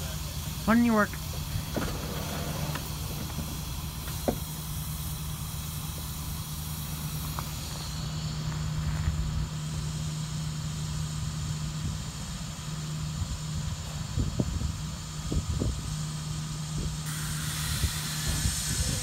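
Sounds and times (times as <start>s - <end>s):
electric locomotive hum with hiss: 0.0s - 19.0s.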